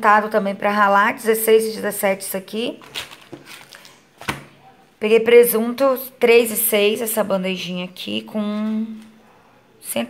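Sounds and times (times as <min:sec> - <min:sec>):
plastic food packages handled: 0:02.8 - 0:04.6.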